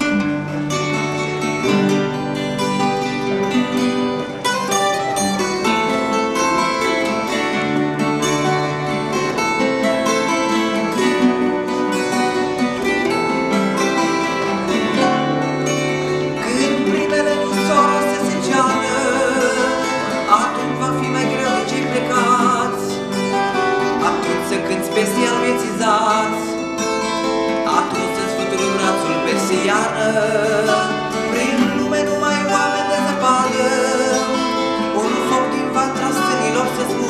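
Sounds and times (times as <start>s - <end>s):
acoustic guitars playing chords: 0.0s - 37.0s.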